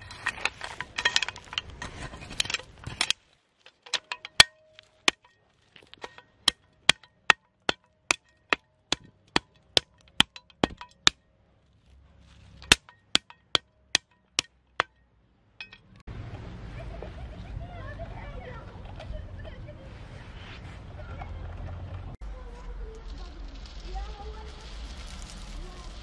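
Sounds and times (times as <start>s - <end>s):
spade tapping soil: 0.0s - 11.3s, 12.5s - 14.9s, 15.6s - 16.0s
metal spade scraping soil: 0.0s - 14.9s.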